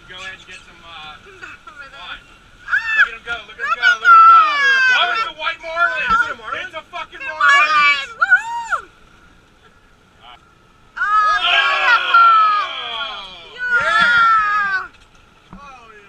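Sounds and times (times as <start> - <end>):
people shouting and whooping: 2.6 - 9.0, 11.0 - 15.0.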